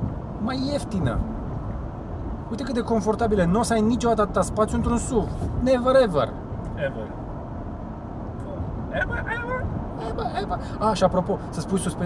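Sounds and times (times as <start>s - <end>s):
road and engine rumble in car: 0.0s - 12.0s.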